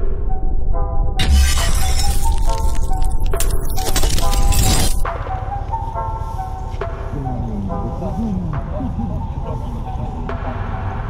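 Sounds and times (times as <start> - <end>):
glass shattering: 1.2 - 5.0.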